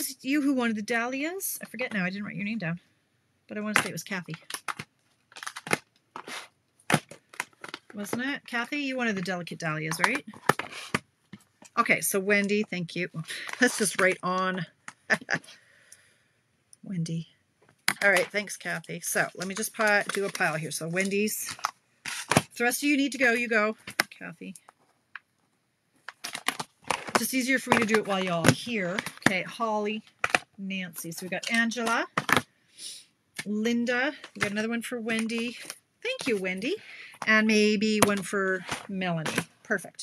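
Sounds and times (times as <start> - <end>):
plastic packaging rustling: 4.2 - 15.6, 17.7 - 25.4, 26.0 - 32.5.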